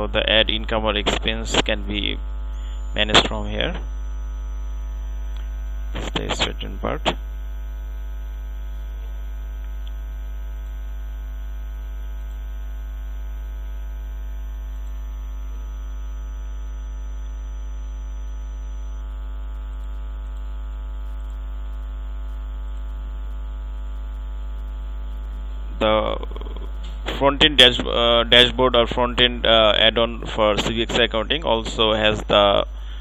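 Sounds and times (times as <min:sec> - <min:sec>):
electrical mains hum: 0:00.0 - 0:33.0.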